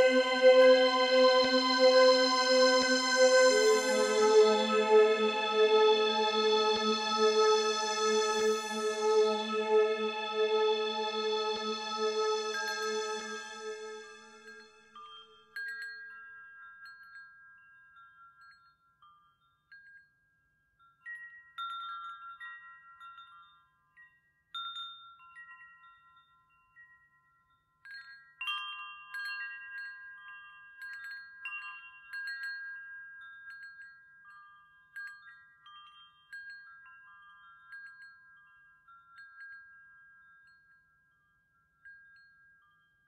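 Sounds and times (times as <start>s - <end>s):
chimes ringing: 0.0s - 14.6s.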